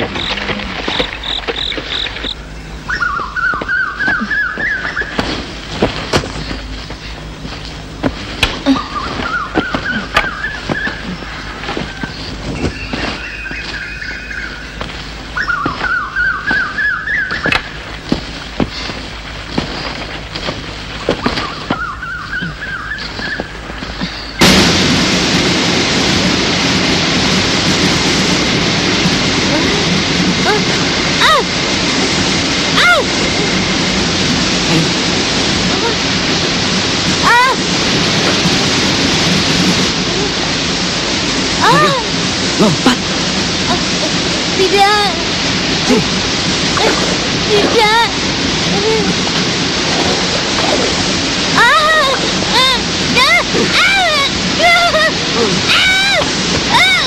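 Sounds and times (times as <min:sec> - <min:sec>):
waterfall rushing: 0:01.8 - 0:57.0.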